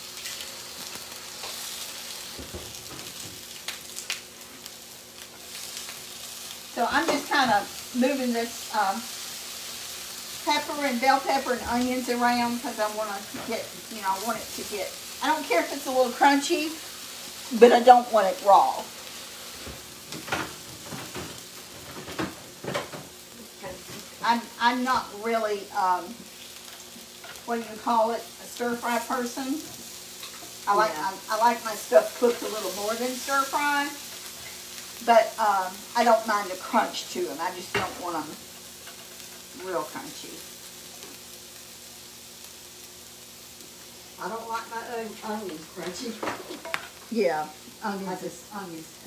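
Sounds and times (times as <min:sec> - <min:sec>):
vegetables sizzling in oil: 0:00.0 - 0:49.0.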